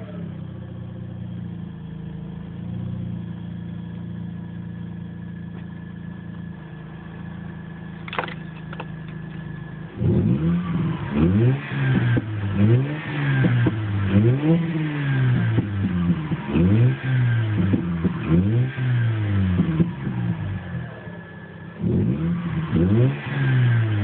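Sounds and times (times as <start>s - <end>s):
rotary engine revving: 8.1s - 24.0s.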